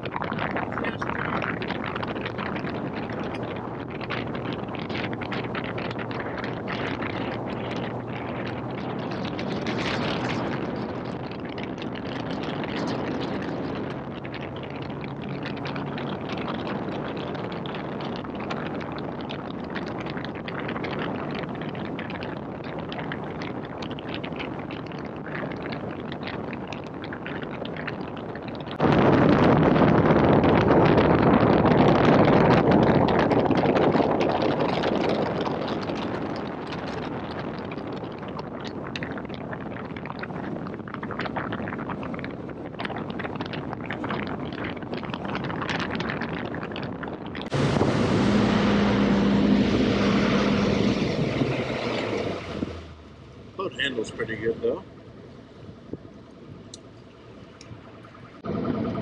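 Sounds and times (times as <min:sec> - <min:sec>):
outboard motor running: 0:00.0 - 0:22.0, 0:47.4 - 0:59.0
rushing water: 0:00.0 - 0:56.1
wind buffeting microphone: 0:00.0 - 0:59.0.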